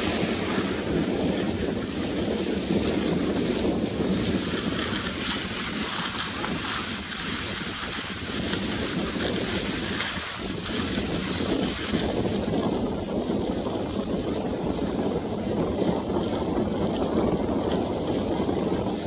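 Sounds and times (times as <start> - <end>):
skis sliding on packed snow: 0.0 - 19.0
wind rushing over microphone: 0.0 - 19.0.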